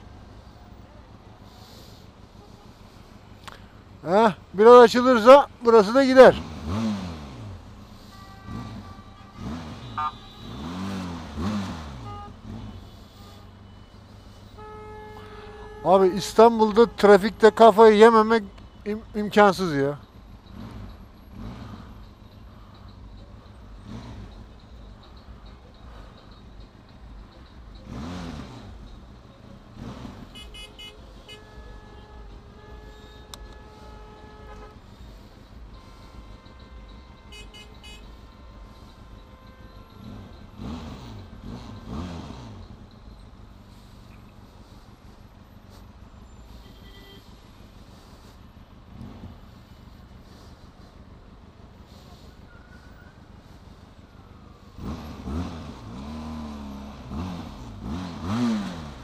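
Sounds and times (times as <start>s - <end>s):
vehicles passing: 0.0s - 59.0s
car horns honking: 1.5s - 22.0s, 23.0s - 59.0s
motorcycle engine idling: 7.4s - 59.0s.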